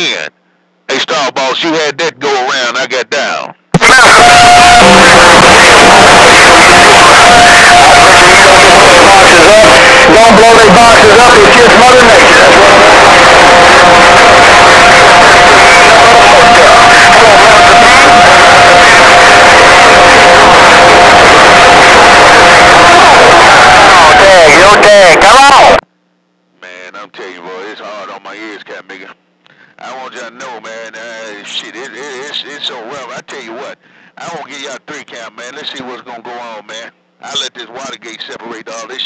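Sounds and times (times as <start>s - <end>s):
loud distorted noise: 3.8s - 25.8s.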